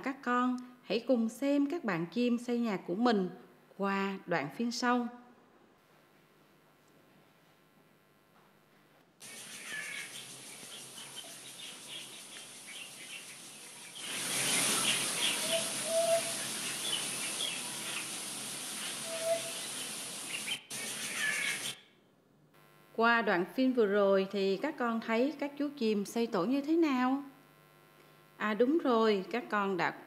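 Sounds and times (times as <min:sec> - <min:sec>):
steady outdoor hiss: 0:09.1 - 0:30.0
birds chirping: 0:09.2 - 0:21.8.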